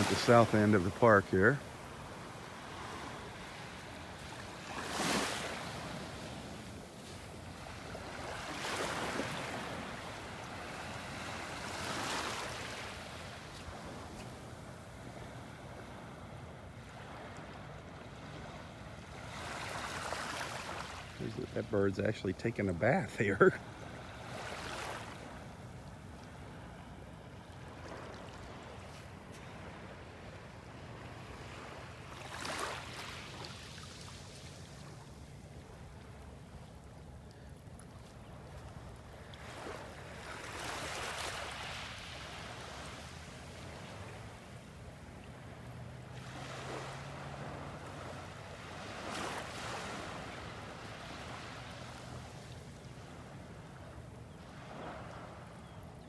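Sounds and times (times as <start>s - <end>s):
small waves lapping on beach: 0.0s - 56.0s.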